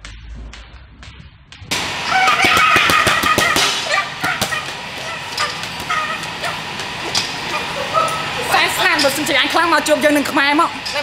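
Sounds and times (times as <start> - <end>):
busy noisy background: 1.7 - 11.0.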